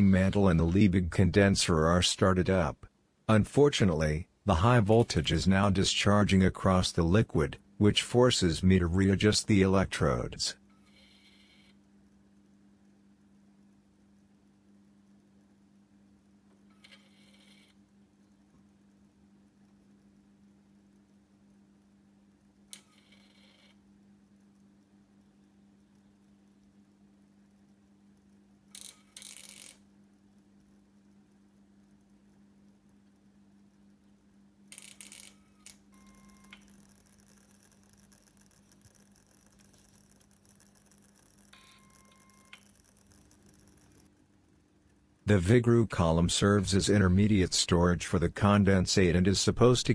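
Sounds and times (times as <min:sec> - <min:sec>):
faint steady hum: 0:00.0 - 0:49.9
electric arc bursts: 0:34.7 - 0:44.2.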